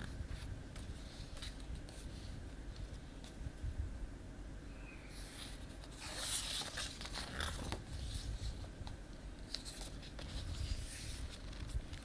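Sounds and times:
book pages rustling: 0.0s - 3.4s, 5.2s - 12.0s.

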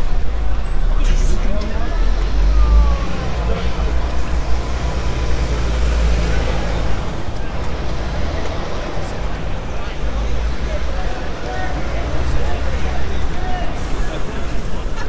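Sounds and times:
people talking nearby: 0.0s - 15.0s
road traffic rumble: 0.0s - 15.0s.

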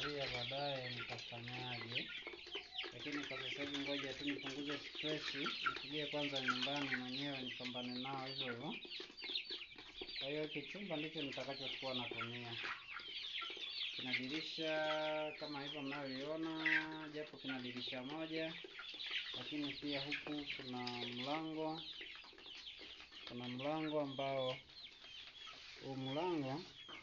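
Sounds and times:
chicks peeping: 0.0s - 27.0s.

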